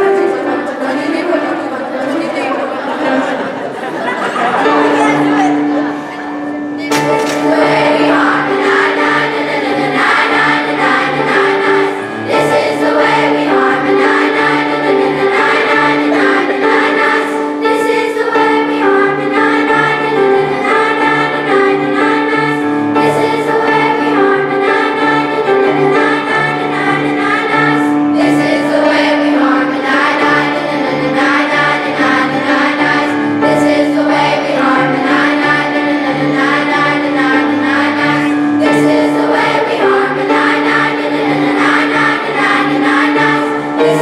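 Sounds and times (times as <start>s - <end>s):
children's choir singing: 0.0s - 44.0s
keyboard accompaniment: 0.0s - 44.0s.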